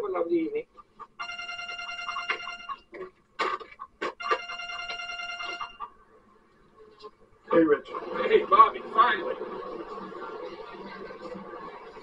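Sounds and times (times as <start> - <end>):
mobile phone ringtone: 1.2 - 3.0, 4.2 - 5.9.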